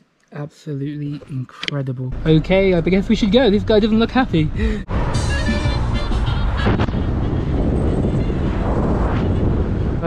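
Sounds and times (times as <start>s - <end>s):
car engine and road noise: 1.0s - 10.0s
wind on microphone: 6.1s - 10.0s.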